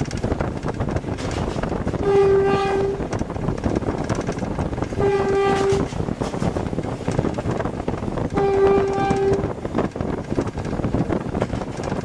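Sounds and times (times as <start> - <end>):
locomotive running: 0.0 - 12.0
train wheel noise: 0.0 - 12.0
locomotive horn blasts: 2.0 - 3.1, 5.0 - 5.9, 8.3 - 9.6.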